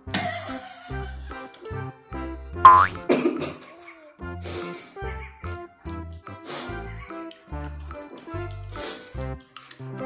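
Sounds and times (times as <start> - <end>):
cheerful background music: 0.1 - 10.0
rising comic glide sound effect: 2.7 - 3.0.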